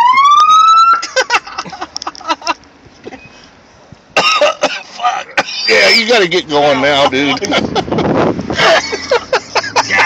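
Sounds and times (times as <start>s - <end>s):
person coughing and gagging: 4.2s - 5.6s.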